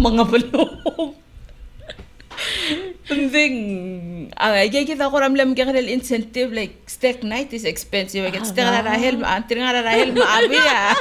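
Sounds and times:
woman laughing breathily: 1.8 - 3.2
person speaking: 8.2 - 11.0.

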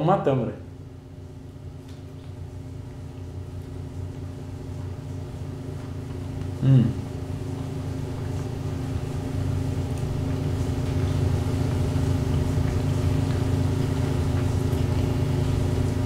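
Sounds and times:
low machine hum: 0.0 - 16.0.

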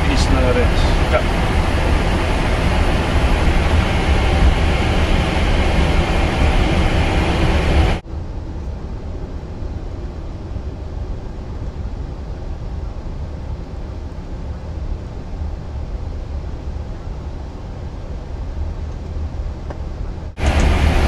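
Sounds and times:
aircraft cabin rumble and hiss: 0.0 - 21.0.

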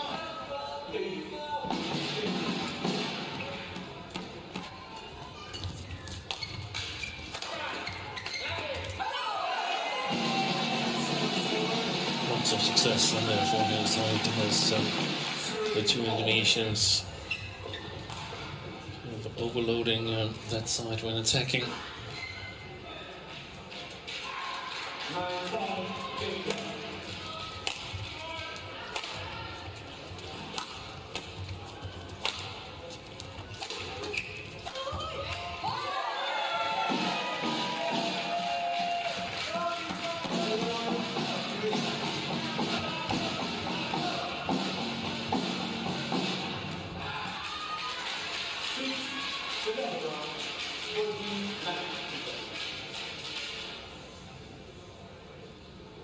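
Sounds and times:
background music: 9.6 - 16.5.

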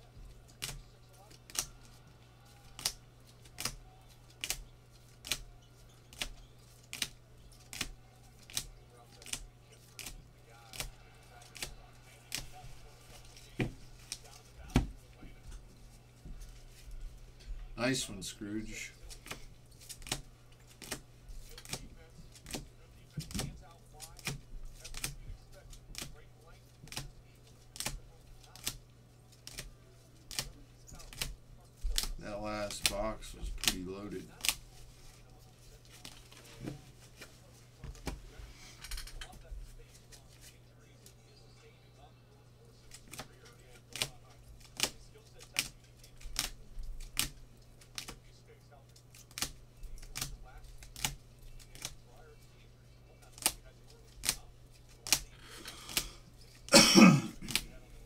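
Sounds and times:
faint low hum: 0.0 - 58.0.

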